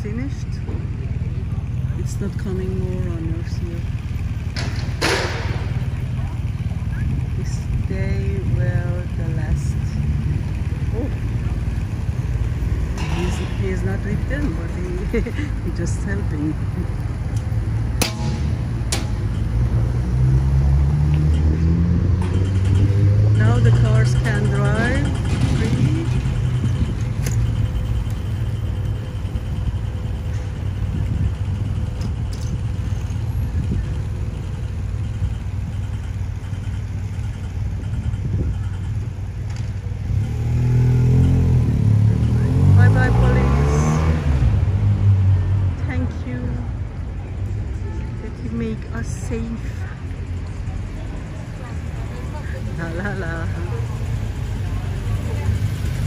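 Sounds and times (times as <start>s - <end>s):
people talking: 0.0s - 4.0s, 5.8s - 11.7s, 13.0s - 16.9s, 22.8s - 26.4s, 41.9s - 44.0s, 45.8s - 55.9s
traffic rumble: 0.0s - 56.0s
cars accelerating past: 16.9s - 27.6s, 40.0s - 46.2s.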